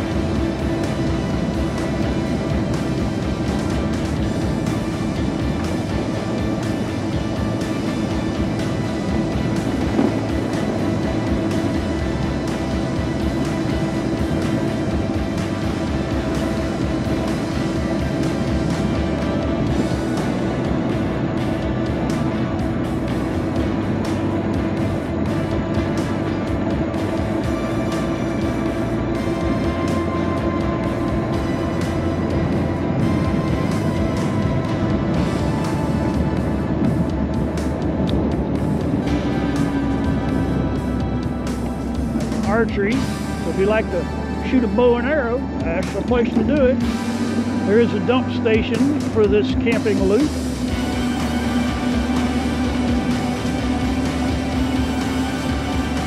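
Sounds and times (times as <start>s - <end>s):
electric scooter motor whine: 0.0s - 56.0s
wind and road noise: 0.0s - 56.0s.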